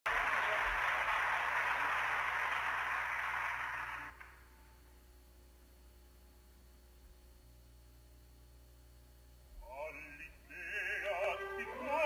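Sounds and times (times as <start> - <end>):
audience applauding: 0.1 - 4.4.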